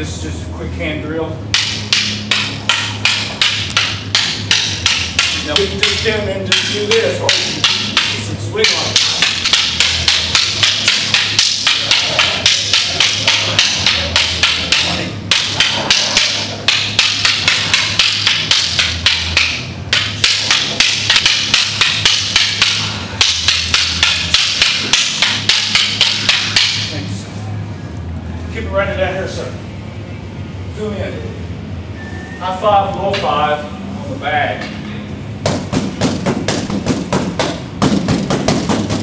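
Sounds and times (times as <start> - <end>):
wooden sticks clacking: 1.5 - 27.0.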